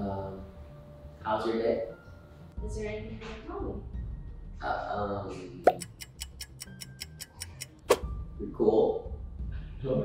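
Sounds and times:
clock ticking fast: 0:05.7 - 0:07.8.

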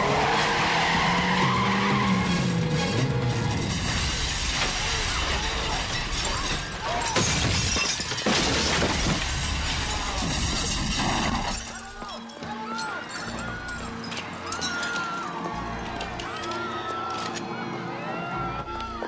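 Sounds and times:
dramatic film music: 0:00.3 - 0:04.1
debris crashing and clattering: 0:03.0 - 0:16.4
glass shattering: 0:03.5 - 0:15.3.

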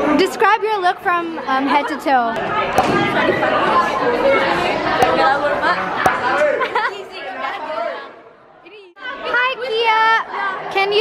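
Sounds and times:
chatter echoing in a hall: 0:00.0 - 0:11.0.

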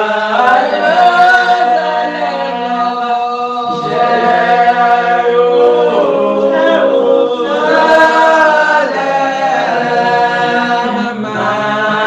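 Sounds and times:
voices singing a hymn unaccompanied: 0:00.0 - 0:12.0.

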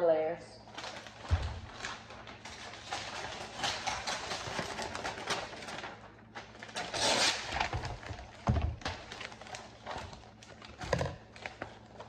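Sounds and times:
wrapping paper crinkling: 0:00.7 - 0:12.0.

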